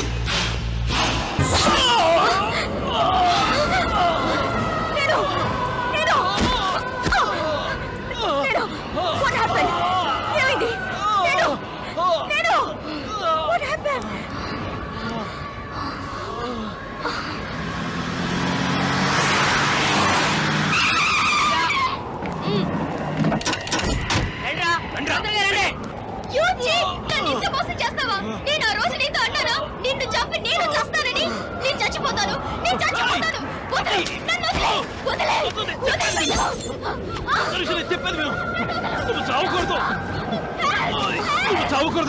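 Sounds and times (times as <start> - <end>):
people crying and shouting: 1.2 - 17.6, 23.7 - 42.0
tyres squealing in a skid: 19.2 - 22.1.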